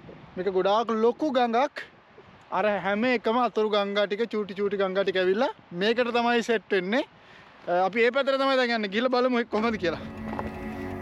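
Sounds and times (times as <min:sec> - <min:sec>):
man speaking: 0:07.7 - 0:10.1.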